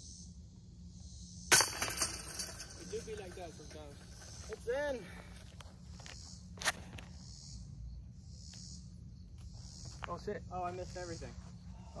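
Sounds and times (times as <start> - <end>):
disc hitting jingling chains: 1.5 - 4.6.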